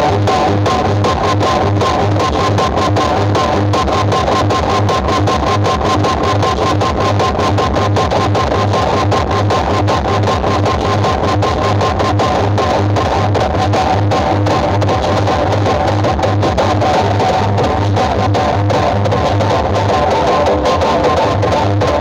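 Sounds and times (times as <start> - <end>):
heavy pulsing bass beat: 0.0 - 22.0
loud guitar music over speakers: 0.0 - 22.0.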